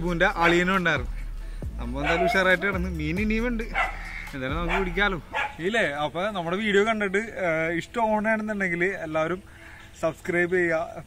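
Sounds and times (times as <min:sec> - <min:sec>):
man speaking animatedly: 0:00.0 - 0:11.0.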